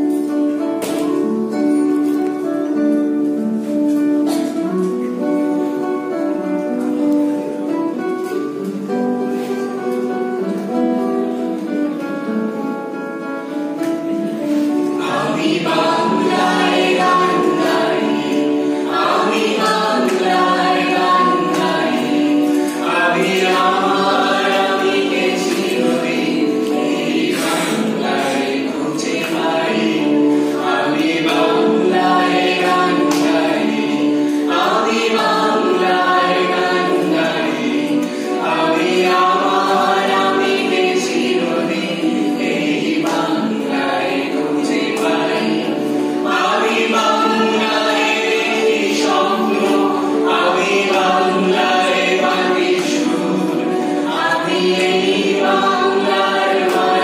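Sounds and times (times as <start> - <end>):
acoustic guitars: 0.0 - 57.0
group of people singing: 13.9 - 57.0.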